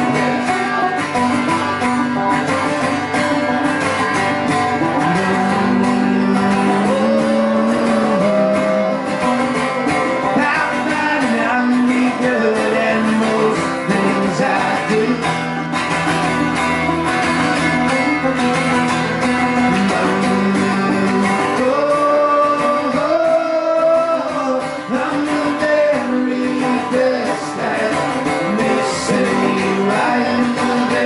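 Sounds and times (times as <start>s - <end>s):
person singing: 0.0s - 15.6s, 19.0s - 31.0s
acoustic guitar: 0.0s - 31.0s
banjo: 0.0s - 31.0s.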